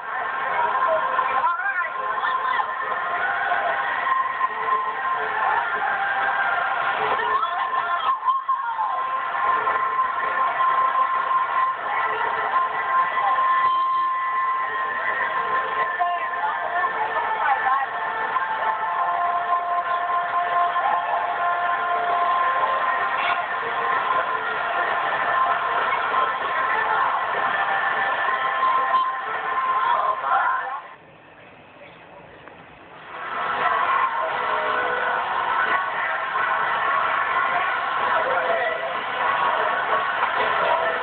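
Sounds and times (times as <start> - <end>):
crowd noise: 0.0 - 41.0
indistinct voices: 31.8 - 41.0.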